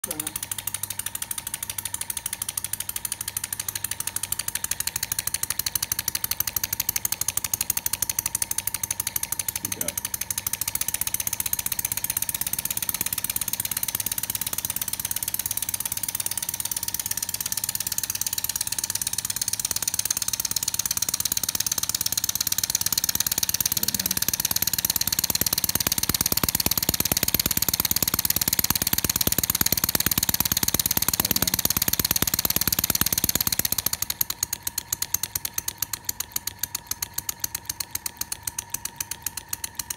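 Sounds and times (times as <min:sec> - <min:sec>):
model steam engine running fast: 0:00.0 - 0:39.9.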